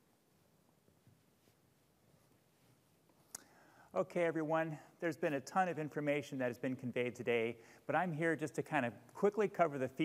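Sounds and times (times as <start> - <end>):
man breathing in: 3.4 - 4.0, 7.6 - 7.9.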